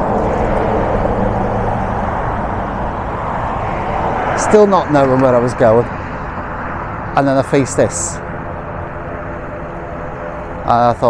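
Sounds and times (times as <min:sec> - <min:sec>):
road traffic rushing: 0:00.0 - 0:11.0.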